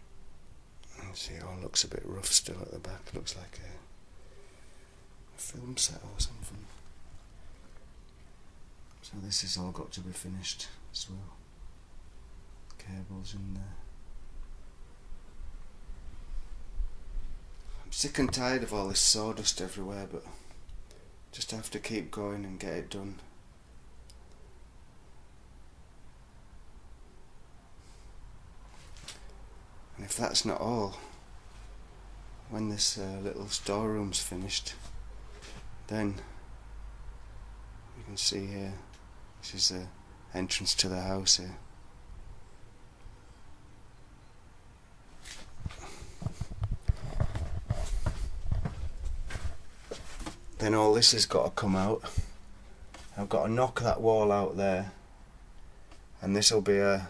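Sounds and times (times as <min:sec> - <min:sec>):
person speaking: 0:00.9 - 0:03.9, 0:17.8 - 0:20.5, 0:29.9 - 0:31.2, 0:32.4 - 0:34.9, 0:50.6 - 0:52.4, 0:53.0 - 0:55.0
footsteps walking: 0:45.2 - 0:50.5, 0:52.9 - 0:53.2.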